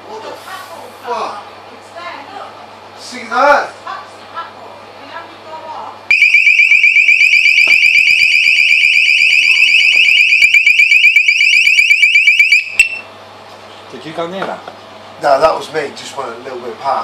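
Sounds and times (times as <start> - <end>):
warbling electronic alarm tone: 6.1 - 13.1.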